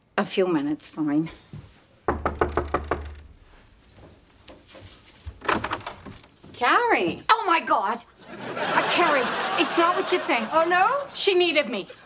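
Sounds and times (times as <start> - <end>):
rapid knocking on door: 2.1 - 3.4.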